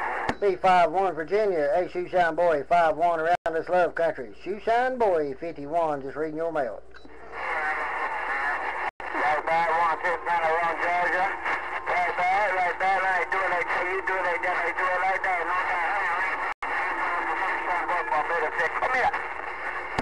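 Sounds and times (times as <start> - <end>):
radio static: 0.0 - 0.9, 7.1 - 20.0.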